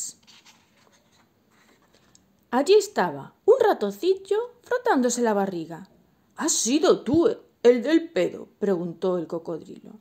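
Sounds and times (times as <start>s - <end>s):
page turning rustle: 0.0s - 2.2s.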